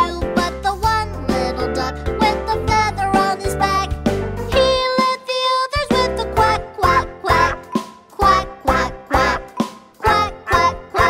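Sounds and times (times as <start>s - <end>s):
children's song music: 0.0s - 11.0s.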